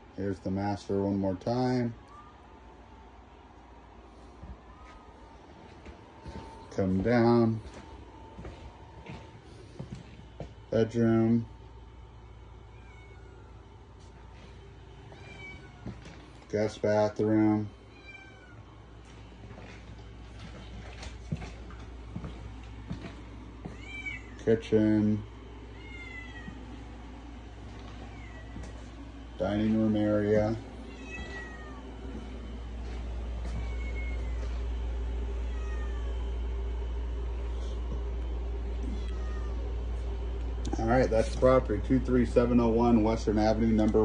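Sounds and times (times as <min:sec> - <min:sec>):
steady low hum: 0:00.0 - 0:44.0
cat meowing faintly: 0:12.7 - 0:13.6, 0:15.1 - 0:16.0, 0:17.9 - 0:18.6, 0:23.7 - 0:24.4, 0:25.7 - 0:26.6, 0:27.9 - 0:28.7, 0:30.9 - 0:31.8, 0:33.5 - 0:34.5, 0:35.4 - 0:36.2, 0:38.8 - 0:39.6.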